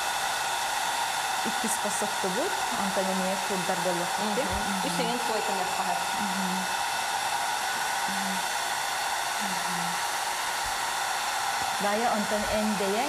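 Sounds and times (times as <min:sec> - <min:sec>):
hair dryer blowing: 0:00.0 - 0:13.0.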